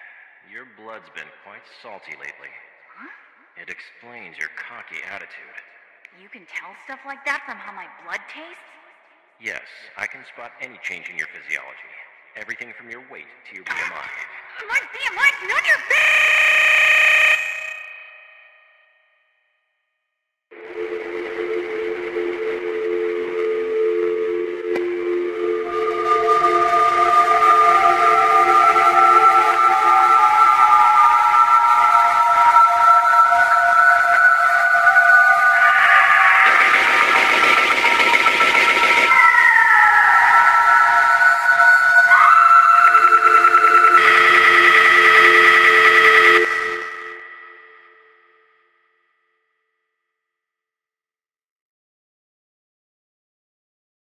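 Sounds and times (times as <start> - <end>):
low two-tone drone: 20.5 - 48.1
high whistle-like tones: 20.5 - 48.3.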